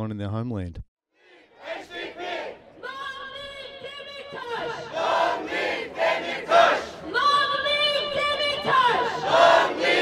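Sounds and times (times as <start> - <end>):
crowd chanting and shouting: 1.2 - 10.0.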